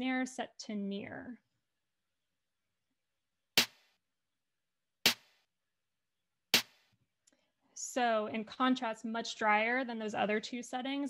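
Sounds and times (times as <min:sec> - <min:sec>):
snare drum hits: 0:03.6 - 0:03.8, 0:05.1 - 0:05.3, 0:06.6 - 0:06.8.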